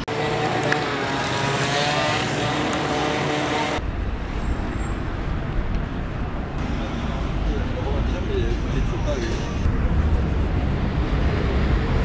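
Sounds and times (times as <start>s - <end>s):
road traffic: 0.0s - 12.0s.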